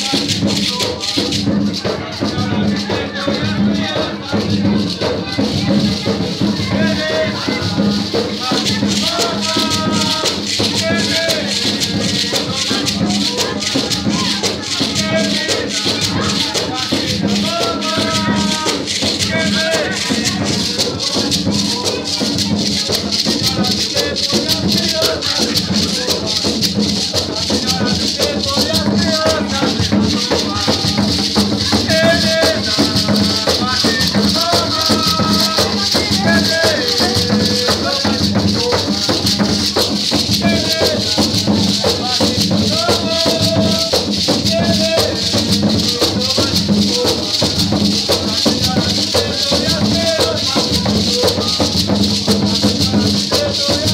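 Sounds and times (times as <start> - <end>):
people singing: 0.0 - 53.9
rattles shaking: 0.0 - 53.9
steady drum beat: 0.0 - 53.9.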